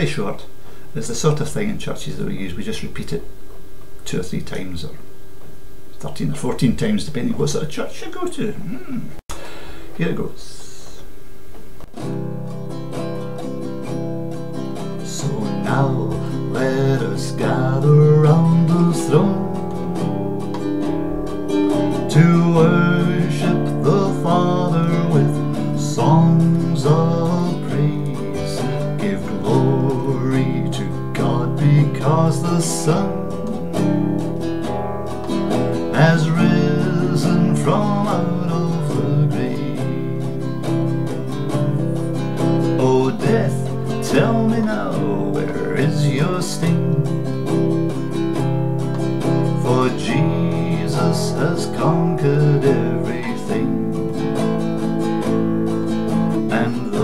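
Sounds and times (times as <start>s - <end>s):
classical guitar strumming chords: 11.5s - 57.0s
man singing a hymn: 15.0s - 20.2s, 21.9s - 33.6s, 35.8s - 40.3s, 42.6s - 47.2s, 49.5s - 54.2s, 56.4s - 57.0s.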